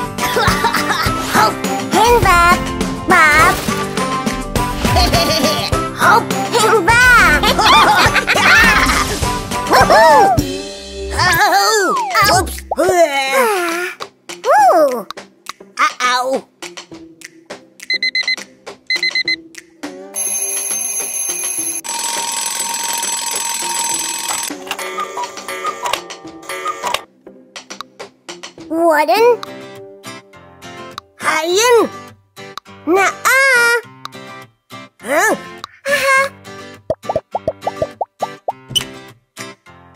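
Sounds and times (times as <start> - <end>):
light background music: 0.0 - 39.8
cartoon plop sound effects: 11.9 - 13.0, 36.9 - 38.9
alarm clock ringing: 20.2 - 24.5.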